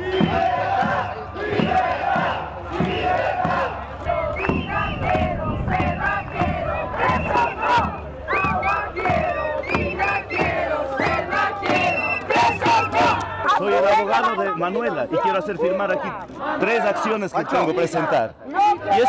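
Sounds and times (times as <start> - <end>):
crowd of protesters shouting: 0.0 - 19.0.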